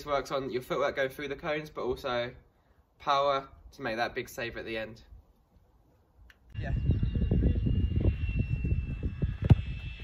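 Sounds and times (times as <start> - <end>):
wind on microphone: 6.5 - 10.0.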